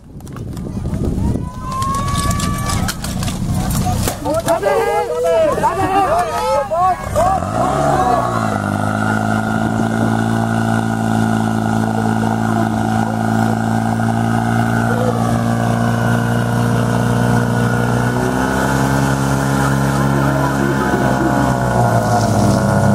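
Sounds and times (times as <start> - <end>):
pump engine running at high revs: 5.6 - 22.9.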